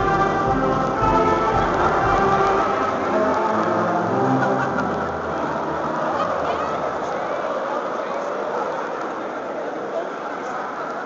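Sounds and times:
mixed choir singing: 0.0 - 7.6
crowd rustling: 0.0 - 11.0.

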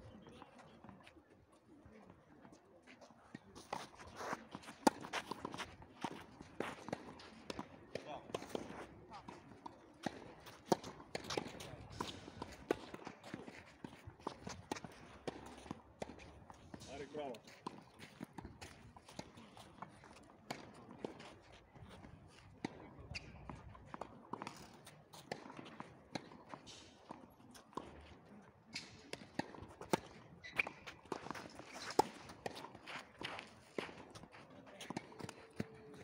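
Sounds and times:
shoes scuffing on clay: 3.6 - 7.3, 29.8 - 36.0
players' voices: 16.7 - 17.4
racket hitting tennis ball: 28.8 - 34.1.

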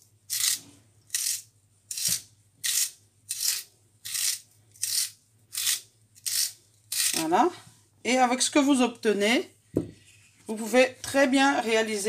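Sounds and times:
vegetable sharpener scraping carrot: 0.3 - 7.3.

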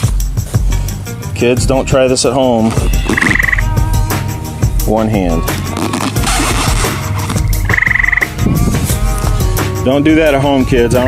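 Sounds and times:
high pulsed trill: 3.2 - 3.8, 6.3 - 8.4.

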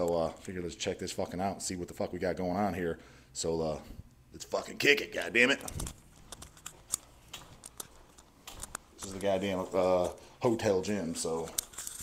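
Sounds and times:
faint clicks and taps: 5.6 - 10.2.

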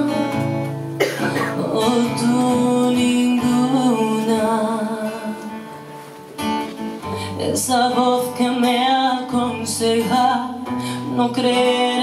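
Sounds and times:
woman singing a ballad: 0.0 - 5.9, 7.0 - 12.0
acoustic guitar: 0.0 - 12.0.

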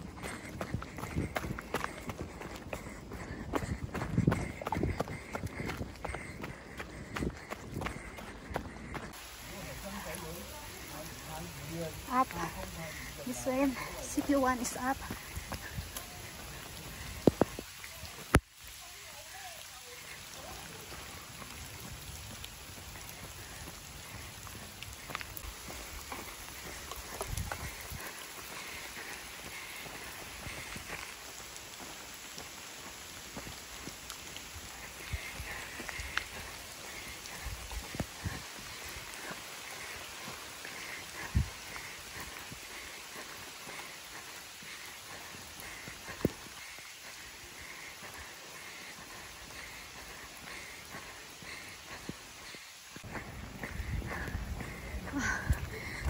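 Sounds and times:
rain on road and foliage: 0.0 - 56.0.

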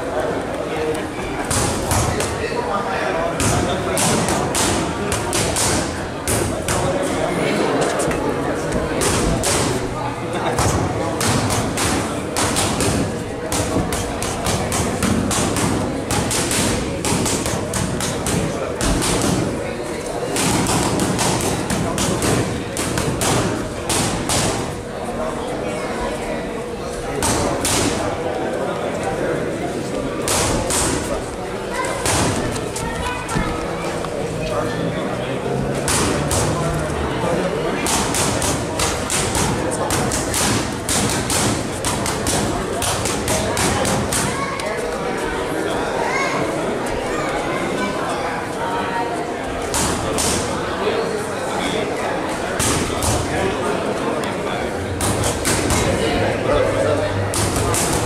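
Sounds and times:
murmur of voices: 0.0 - 58.0
boxing gloves smacking mitts: 10.6 - 19.6, 20.3 - 24.7, 37.8 - 44.4.

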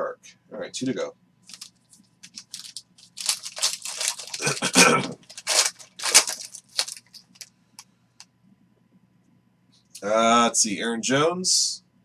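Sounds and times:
foil wrapper tearing and crinkling: 1.5 - 7.5.

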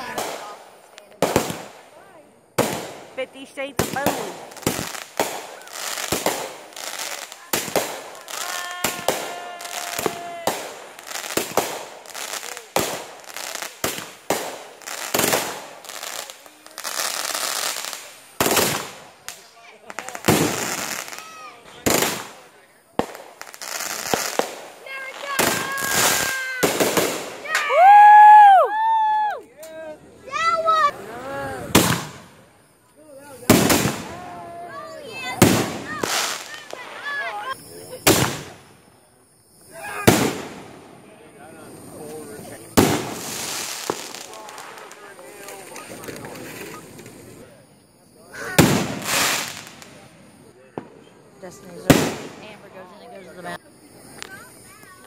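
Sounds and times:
fireworks bangs and cracks: 0.0 - 28.9, 30.3 - 47.6, 48.3 - 55.0
rockets bursting overhead: 0.0 - 28.9, 30.5 - 47.6, 48.3 - 52.9
fireworks hissing and crackling: 0.0 - 55.0.

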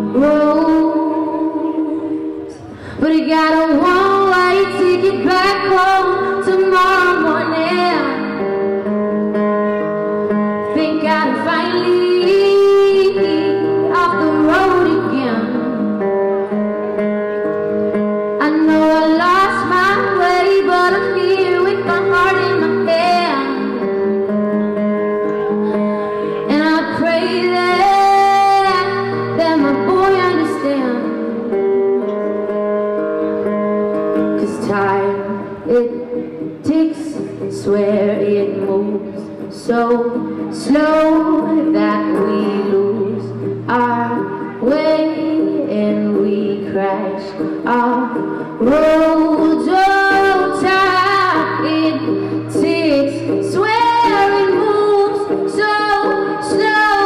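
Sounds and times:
woman singing: 0.0 - 8.8, 10.4 - 16.2, 18.3 - 24.7, 25.6 - 32.1, 34.2 - 57.0
acoustic guitar: 0.0 - 57.0.

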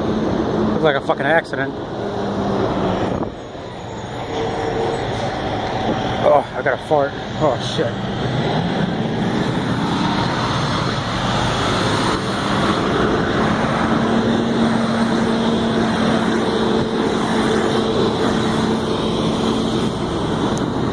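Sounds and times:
highway traffic noise: 0.0 - 20.9.

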